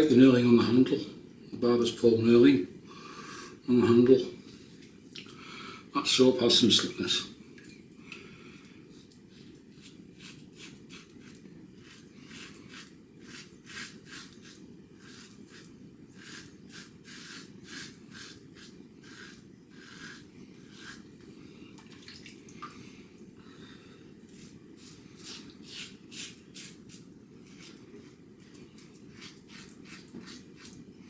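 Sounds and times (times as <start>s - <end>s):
low background hum: 0.0s - 31.0s
razor scraping stubble: 9.7s - 21.2s, 24.2s - 30.8s.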